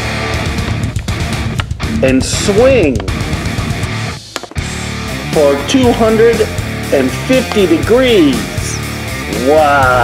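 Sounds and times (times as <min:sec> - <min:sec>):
rock music with guitar: 0:00.0 - 0:10.0.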